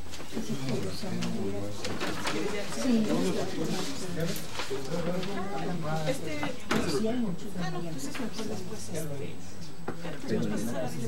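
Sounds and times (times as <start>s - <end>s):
paper rustling: 0.0s - 6.4s
murmured voices: 0.3s - 11.0s.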